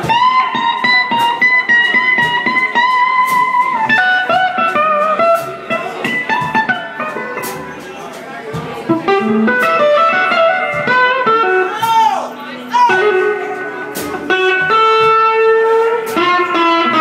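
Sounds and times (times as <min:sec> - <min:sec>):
electric guitar lead: 0:00.0 - 0:07.9, 0:08.5 - 0:17.0
drums: 0:00.0 - 0:17.0.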